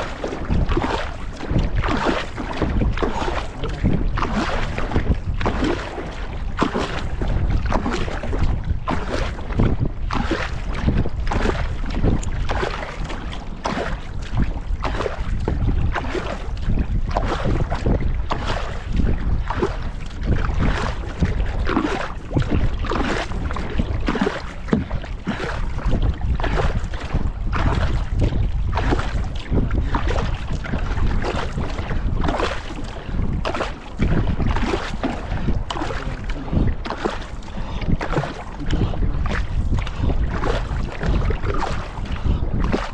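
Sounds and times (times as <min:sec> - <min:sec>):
paddle strokes splashing: 0:00.0 - 0:42.9
water running along hull: 0:00.0 - 0:42.9
wind buffeting microphone: 0:00.0 - 0:42.9.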